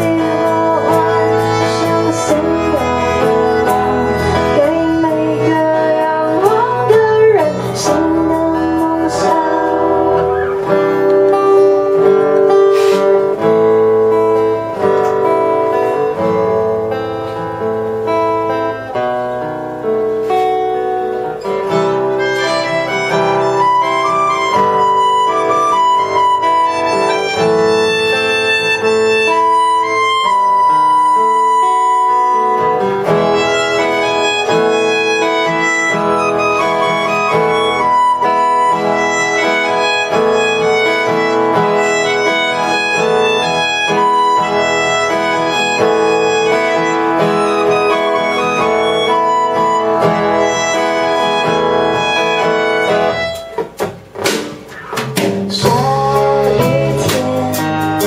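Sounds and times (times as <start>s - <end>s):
indie band playing: 0.0s - 58.0s
electric bass: 54.8s - 58.0s.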